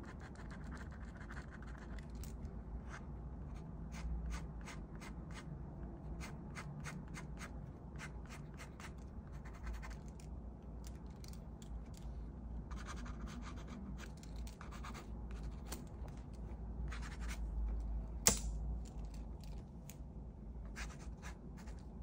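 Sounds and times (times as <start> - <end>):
pen scratching on paper: 0.0 - 2.0, 2.9 - 5.5, 6.2 - 10.0, 12.7 - 13.8, 14.6 - 15.7, 20.8 - 21.8.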